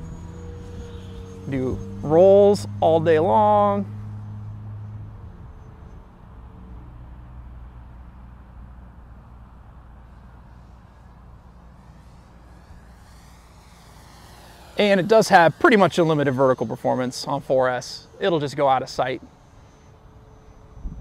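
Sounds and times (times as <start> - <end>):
model airplane motor whining: 0.0 - 6.1, 9.8 - 21.0.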